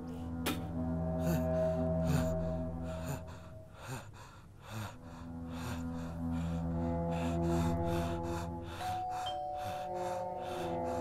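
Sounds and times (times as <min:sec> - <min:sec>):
music with sustained notes: 0:00.0 - 0:11.0
person gasping: 0:01.2 - 0:11.0.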